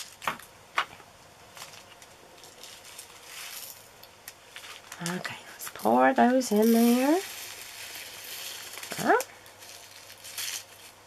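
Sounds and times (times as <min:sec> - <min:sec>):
plastic bag crinkling: 0:01.5 - 0:11.0.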